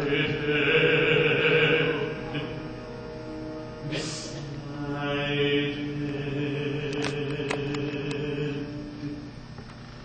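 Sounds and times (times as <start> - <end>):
orchestra holding low chord: 0.0 - 9.3.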